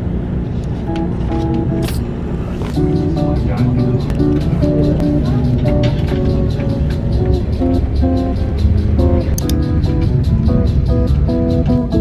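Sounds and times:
plucked guitar: 0.8 - 2.0, 2.6 - 12.0
low steady bass: 0.8 - 12.0.

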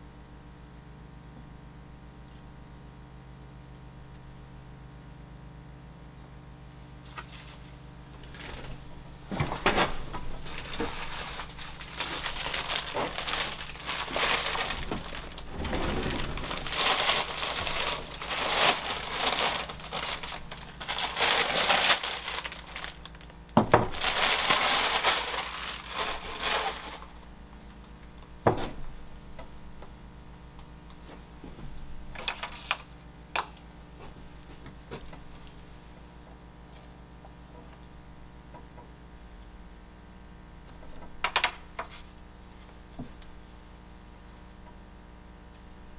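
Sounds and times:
plastic bag crinkling: 9.8 - 27.3.

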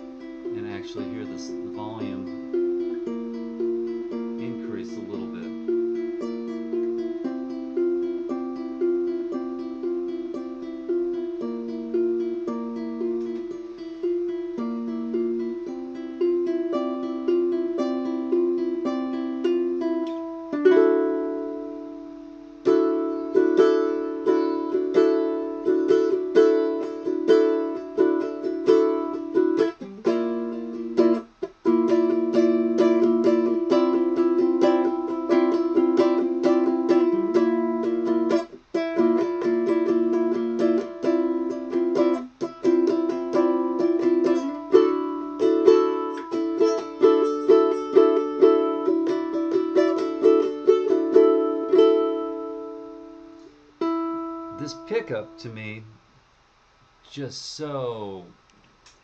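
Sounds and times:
ukulele chords through amp: 0.0 - 55.8.

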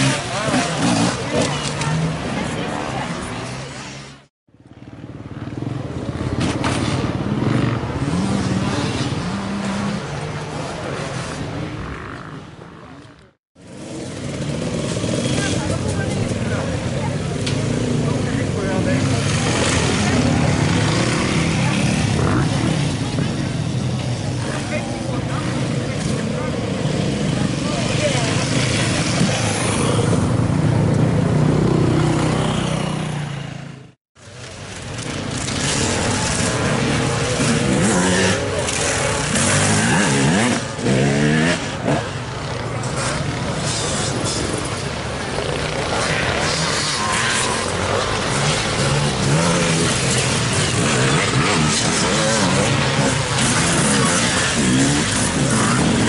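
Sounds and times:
voices: 0.0 - 6.3, 14.2 - 33.7, 34.4 - 56.0
motorcycle engines revving: 0.0 - 56.0.

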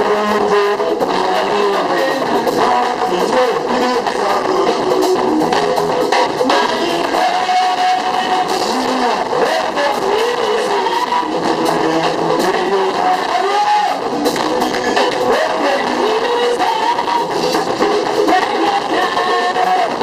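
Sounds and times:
live band with electric guitars: 0.0 - 20.0.

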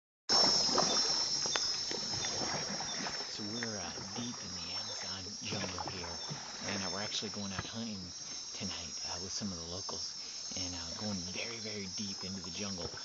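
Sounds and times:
crickets and insects trilling: 0.3 - 13.0
man's voice: 3.4 - 13.0.

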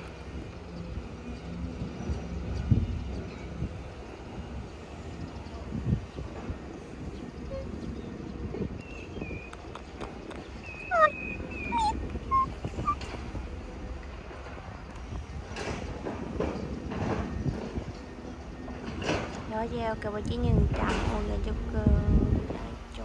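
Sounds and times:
birds chirping: 7.0 - 13.2
low steady rumble: 19.5 - 23.0.

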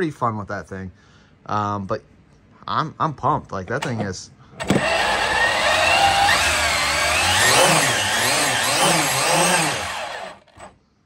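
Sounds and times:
rc truck motor whining: 4.6 - 10.8
tyres spinning on steel rollers: 4.8 - 10.7.

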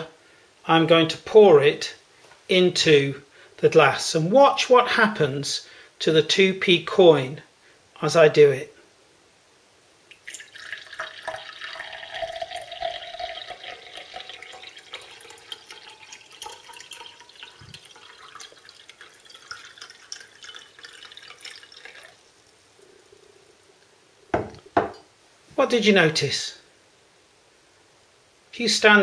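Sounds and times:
water pouring into a glass: 10.1 - 23.8.

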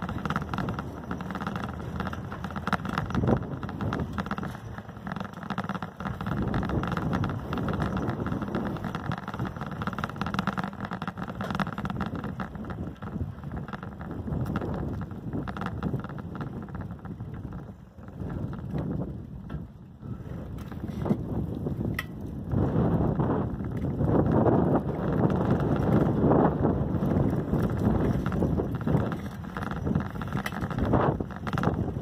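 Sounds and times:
small knocks and rattles: 0.0 - 22.4, 23.6 - 32.0
tyre noise on road: 0.0 - 32.0
wind rushing over microphone: 0.0 - 32.0.

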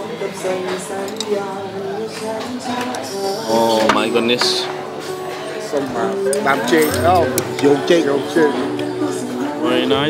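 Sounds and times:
background music with held notes: 0.0 - 10.0
voices in a room: 0.0 - 10.0
tableware clinking: 6.3 - 8.2.

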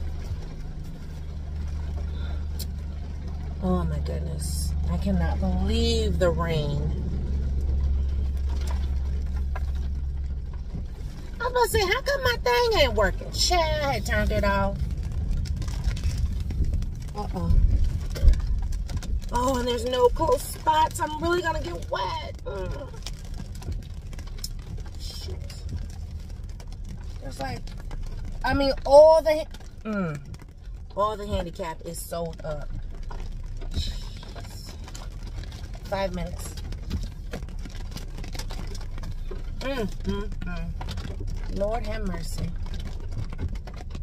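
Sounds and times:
car rolling rumble: 0.0 - 44.0
rain on a car roof: 0.0 - 44.0.

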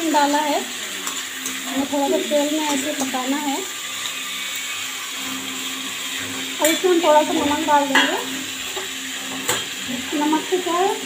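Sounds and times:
vegetables frying in hot oil: 0.0 - 11.0.

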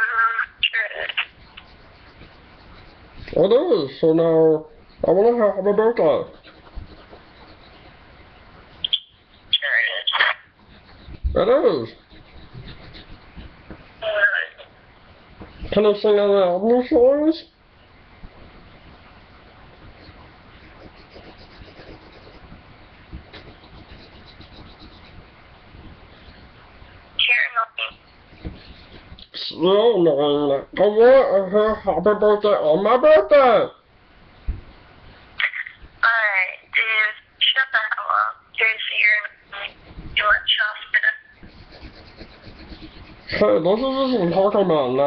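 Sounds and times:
person speaking: 0.0 - 8.0, 9.4 - 14.8, 35.4 - 45.0
phone rubbing and scratching: 1.0 - 3.4, 6.3 - 8.0, 9.4 - 13.6, 19.9 - 22.6, 23.2 - 25.3, 28.2 - 29.2, 40.3 - 44.4.

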